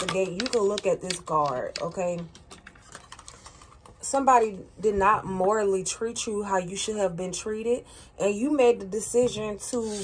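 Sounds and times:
cards being handled: 0.0s - 4.0s.

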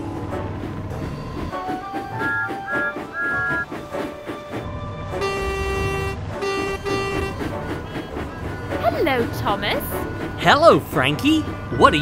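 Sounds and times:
background music: 0.0s - 12.0s
steam locomotive whistle: 5.0s - 8.2s.

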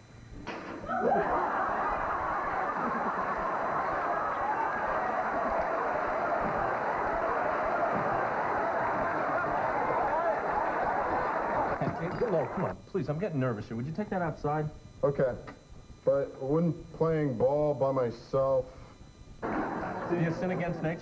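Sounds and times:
studio audience laughing: 0.9s - 12.6s, 19.4s - 21.0s.

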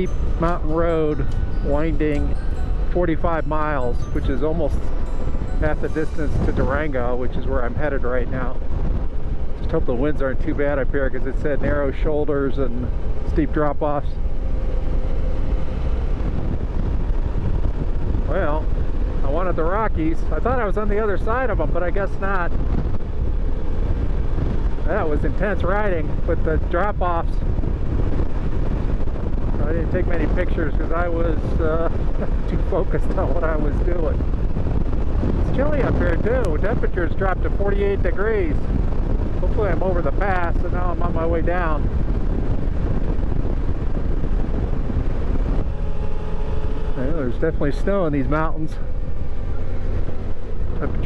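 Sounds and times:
motorcycle engine and road noise: 0.0s - 51.0s
wind rushing over microphone: 0.0s - 51.0s
motorcycle engine running: 40.8s - 51.0s
steady hum: 41.0s - 51.0s.

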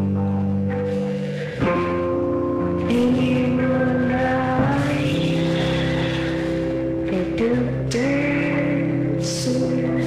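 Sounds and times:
droning electric guitar: 0.0s - 10.0s
live indie rock band: 0.0s - 10.0s.

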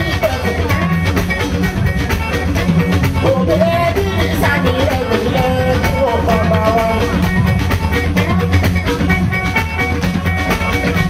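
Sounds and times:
drums and percussion beat: 0.0s - 11.0s
guitar: 0.0s - 11.0s.

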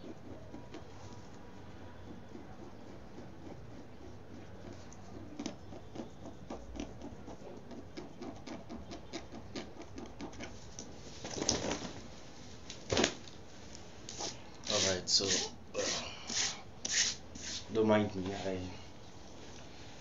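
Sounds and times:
fingernails scratching print: 0.0s - 10.6s.

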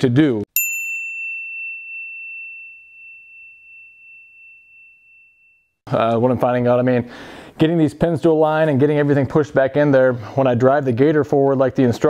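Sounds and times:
bell-like ding: 0.6s - 5.8s.

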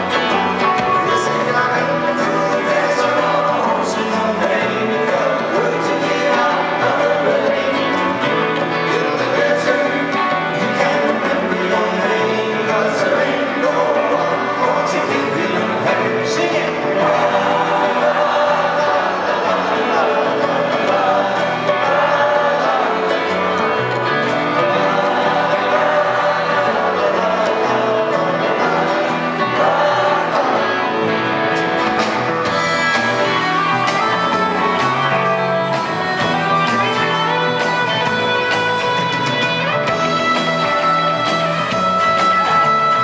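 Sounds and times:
drums: 0.0s - 43.0s
electric guitar: 0.0s - 43.0s
people singing in harmony: 0.0s - 43.0s
strummed acoustic guitar: 0.0s - 43.0s.

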